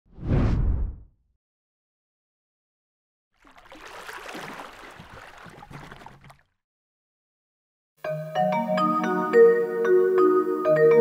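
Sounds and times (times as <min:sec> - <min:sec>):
whoosh with deep rumble: 0:00.1 - 0:01.1.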